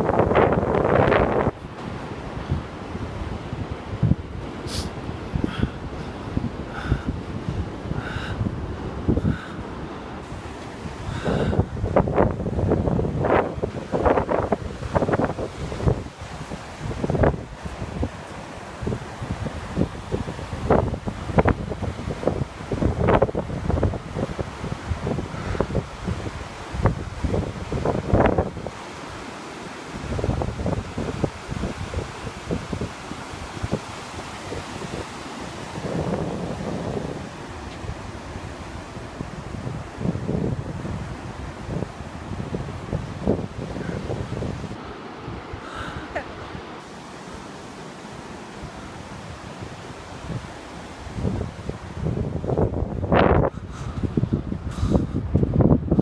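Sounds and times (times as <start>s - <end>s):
wind buffeting microphone: 0.0s - 29.3s, 29.9s - 46.9s, 48.5s - 56.0s
surf breaking on shore: 0.0s - 56.0s.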